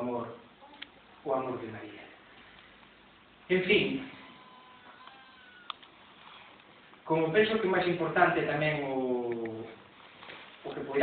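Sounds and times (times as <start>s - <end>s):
faint high squeak: 4.2s - 5.7s.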